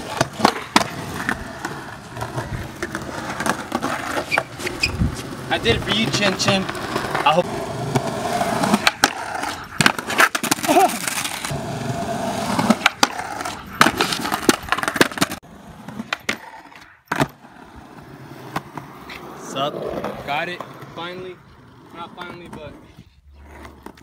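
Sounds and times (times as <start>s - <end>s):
skateboard clacking on ground: 0.0s - 11.6s, 12.5s - 17.4s
skateboard wheels rolling on concrete: 0.0s - 24.0s.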